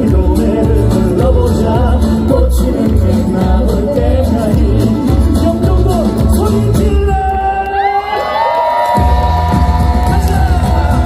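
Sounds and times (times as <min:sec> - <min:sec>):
live band music: 0:00.0 - 0:07.6, 0:09.0 - 0:11.0
crowd cheering: 0:07.2 - 0:11.0.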